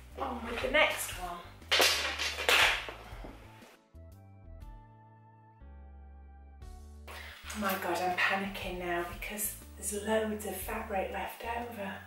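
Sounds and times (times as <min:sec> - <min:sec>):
quiet background music: 0:00.0 - 0:05.9, 0:06.6 - 0:12.0.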